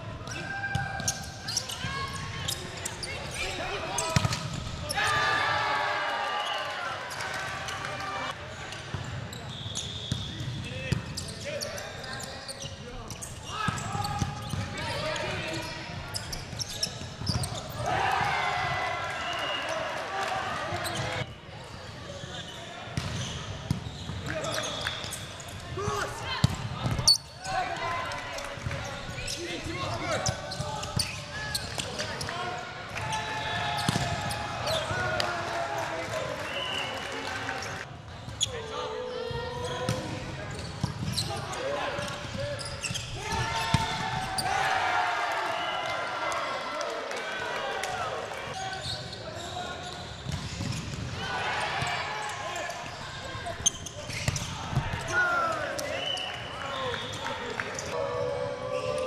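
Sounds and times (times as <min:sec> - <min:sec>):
players calling and talking: 0:00.0 - 0:59.0.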